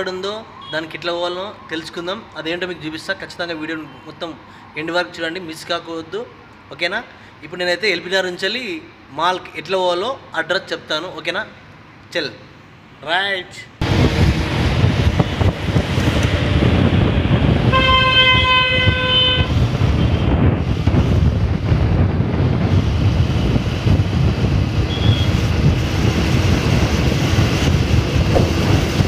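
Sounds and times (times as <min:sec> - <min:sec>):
road and wind noise: 0:00.0 - 0:29.0
vehicle horn: 0:17.6 - 0:20.4, 0:24.8 - 0:25.5.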